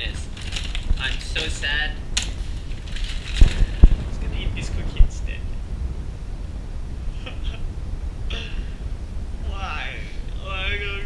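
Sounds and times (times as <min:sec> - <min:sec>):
low handling thumps: 0:00.0 - 0:06.8.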